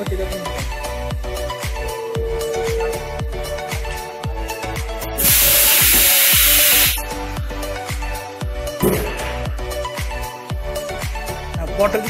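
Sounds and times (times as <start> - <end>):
loud compressed air hiss: 5.1 - 7.0.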